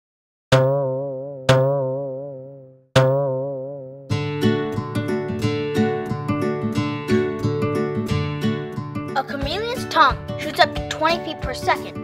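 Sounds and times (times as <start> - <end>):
cartoon boing sound effect: 0.5 - 4.1.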